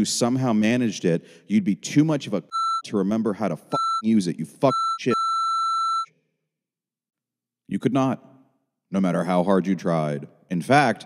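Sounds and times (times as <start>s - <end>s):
censor bleep: 2.5s - 3.0s, 3.7s - 4.1s, 4.7s - 6.1s.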